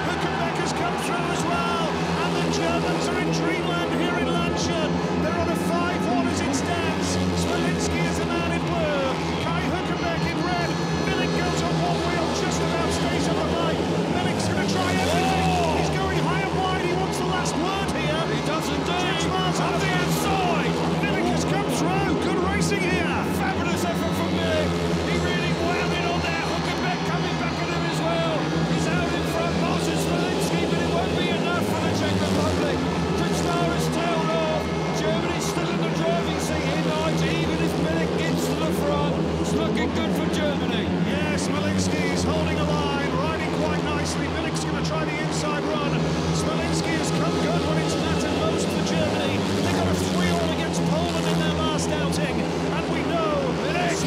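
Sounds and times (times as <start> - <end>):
crowd: 0.0 - 54.0
motorbike engines racing: 0.0 - 54.0.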